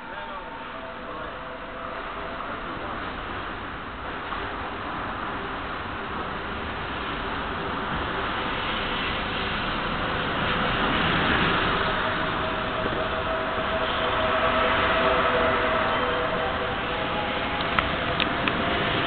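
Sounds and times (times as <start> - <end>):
electric train rolling in: 0.0 - 19.0
steady whine: 0.0 - 19.0.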